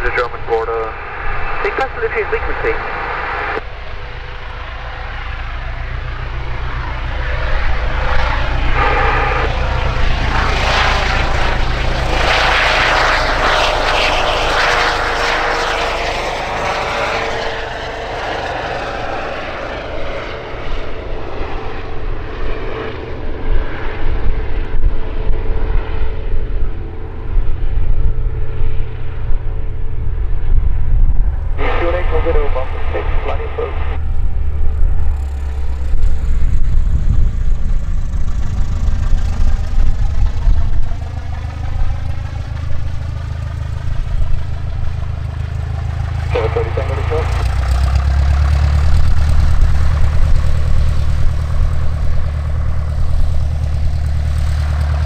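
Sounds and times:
helicopter rotor beat: 0:00.0 - 0:55.0
helicopter turbine whine: 0:00.0 - 0:55.0.

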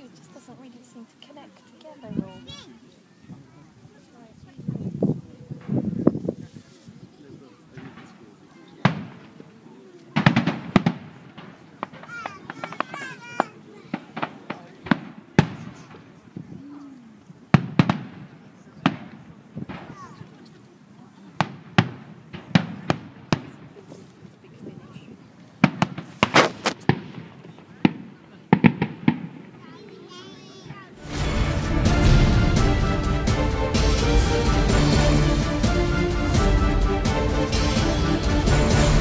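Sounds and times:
fireworks crackling: 0:07.6 - 0:16.5, 0:17.2 - 0:39.0
fireworks bangs: 0:07.7 - 0:09.5, 0:10.1 - 0:16.5, 0:17.5 - 0:20.5, 0:21.4 - 0:24.1, 0:25.6 - 0:39.0.

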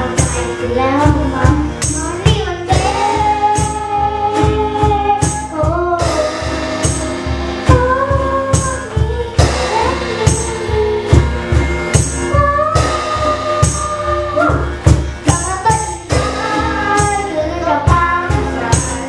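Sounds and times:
backing track with steady beat: 0:00.0 - 0:19.0
girl singing a pop ballad: 0:00.0 - 0:19.0
guitar: 0:00.0 - 0:19.0.

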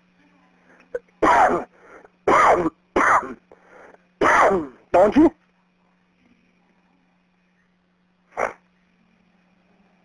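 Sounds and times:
voice over telephone line: 0:04.9 - 0:05.4.

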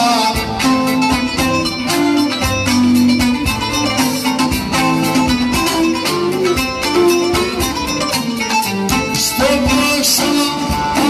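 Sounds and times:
bowed string melody: 0:00.0 - 0:11.0
plucked lutes strumming: 0:00.0 - 0:11.0.

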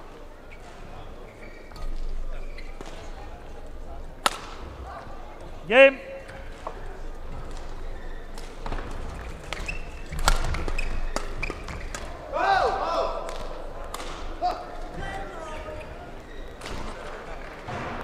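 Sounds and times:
court shoe squeaks: 0:00.4 - 0:03.3, 0:07.4 - 0:12.2, 0:14.9 - 0:17.5.

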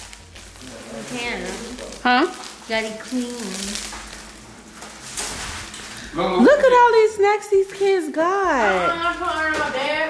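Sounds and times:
plastic packaging crinkling: 0:00.0 - 0:06.8, 0:07.5 - 0:10.0.

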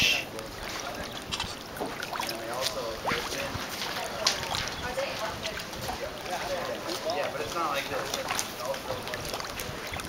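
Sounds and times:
people talking: 0:00.0 - 0:01.6, 0:02.2 - 0:10.0
water sloshing and splashing: 0:00.2 - 0:10.0.

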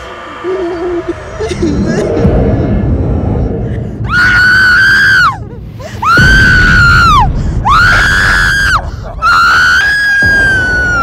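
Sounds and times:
girl screaming: 0:04.0 - 0:11.0.

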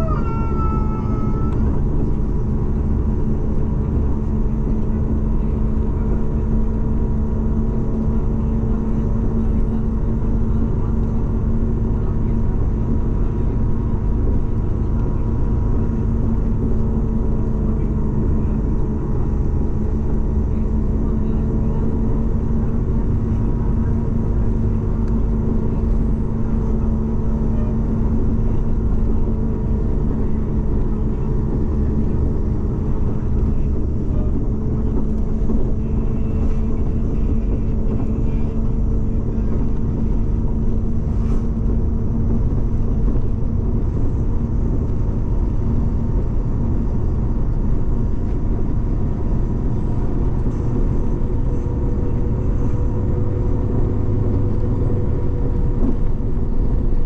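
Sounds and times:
road rumble: 0:00.0 - 0:57.0
vehicle engine drone: 0:00.0 - 0:57.0.

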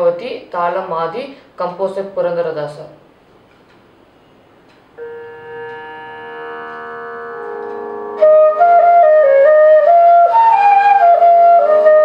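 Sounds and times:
sustained drone chord: 0:05.0 - 0:09.7.

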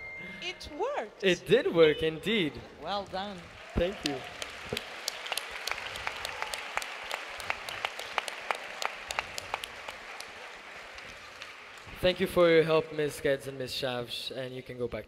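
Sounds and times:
audience applauding: 0:03.0 - 0:13.7.

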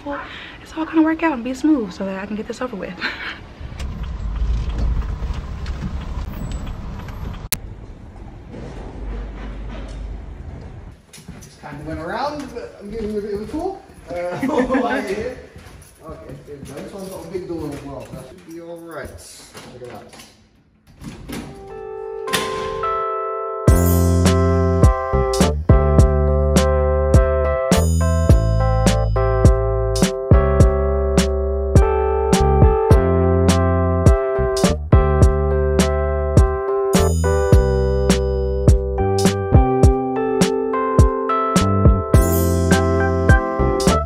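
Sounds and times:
van engine and road rumble: 0:03.4 - 0:11.0
background music with held notes: 0:21.5 - 0:44.0.

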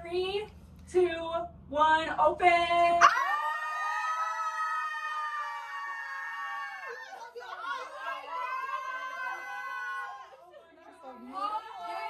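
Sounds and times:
young women screaming: 0:03.0 - 0:10.4.

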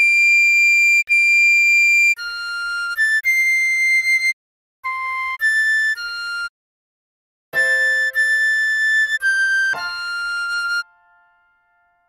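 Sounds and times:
recorder playing long high notes: 0:07.6 - 0:11.5.

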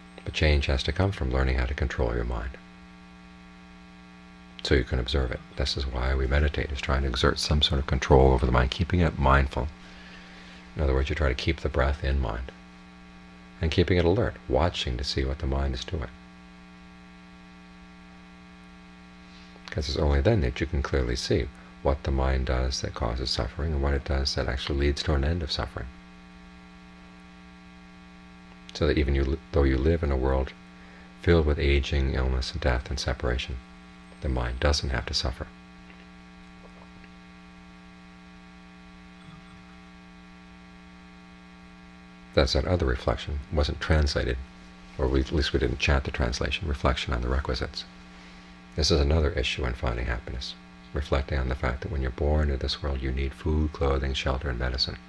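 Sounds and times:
faint electrical hum: 0:00.0 - 0:55.0.

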